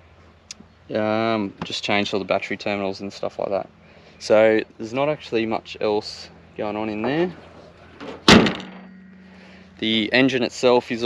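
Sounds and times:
car bonnet slammed shut: 8.0 - 9.0.

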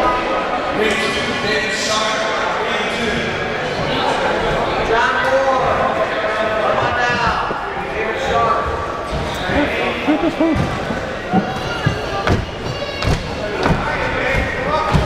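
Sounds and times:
short dull thumps: 8.6 - 15.0.

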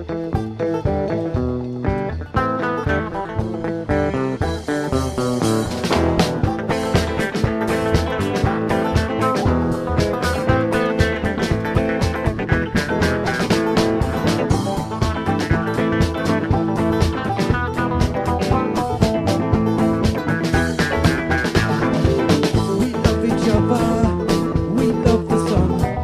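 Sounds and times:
drum kit beat: 0.0 - 26.0
electric guitars: 0.0 - 26.0.

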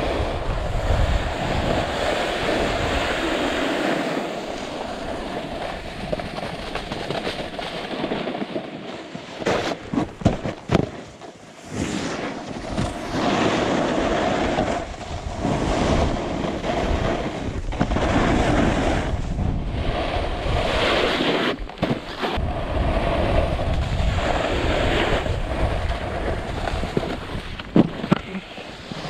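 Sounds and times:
wind buffeting microphone: 0.0 - 7.9, 12.5 - 29.0
snowboard scraping over snow: 0.0 - 29.0.

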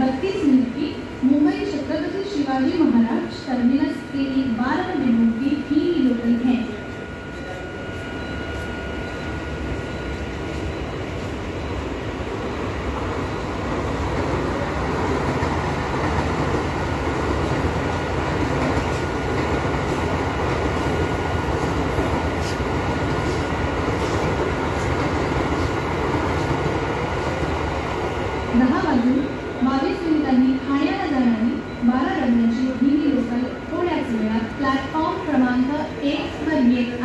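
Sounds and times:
train wheels rumbling and rattling: 12.3 - 28.5.

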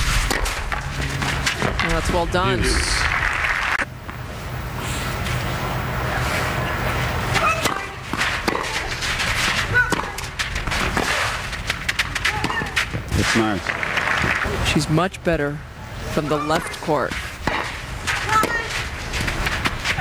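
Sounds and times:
tennis ball struck by rackets: 7.4 - 12.9, 17.4 - 18.7.

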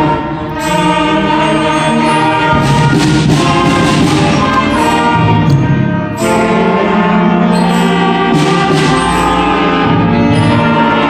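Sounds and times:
concert band playing chords: 0.0 - 11.0.

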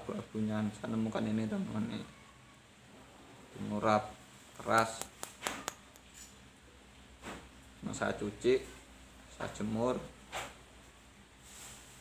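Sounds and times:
bamboo clicking in fingers: 4.6 - 6.1.

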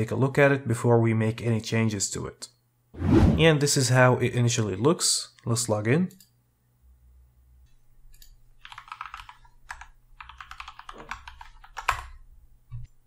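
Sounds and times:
computer keyboard typing: 8.1 - 12.2.

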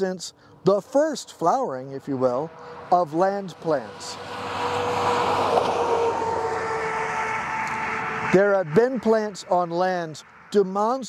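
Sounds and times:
motor vehicle passing: 0.4 - 10.7.

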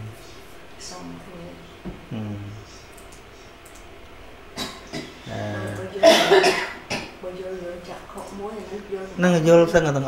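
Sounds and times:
man coughing: 6.0 - 7.2.

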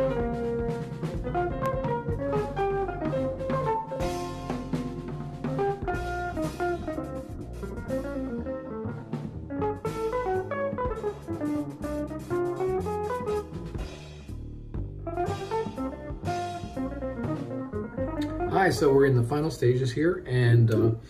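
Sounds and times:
drum beat: 0.0 - 8.4, 9.1 - 19.3
plucked guitar melody: 0.0 - 14.0, 14.9 - 19.8.

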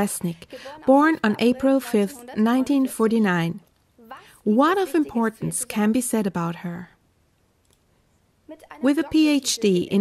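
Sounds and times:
woman speaking: 0.0 - 7.0, 8.4 - 10.0.

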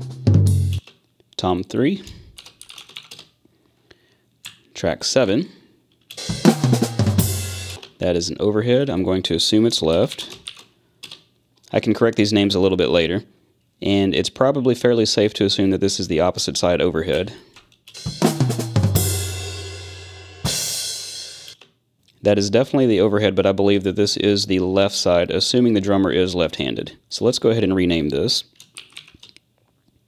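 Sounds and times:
drum hits: 0.0 - 0.8, 6.2 - 7.8, 18.0 - 21.5.

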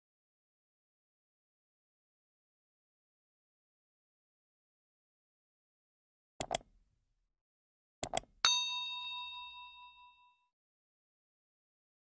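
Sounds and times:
quick clicks: 6.4 - 6.7, 8.0 - 8.3
bell-like ding: 8.4 - 10.6.

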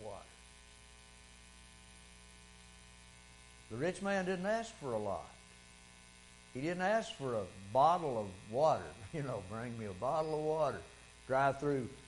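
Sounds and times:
man speaking: 0.0 - 0.3, 3.7 - 5.4, 6.6 - 12.0
electrical mains hum: 0.0 - 12.0.

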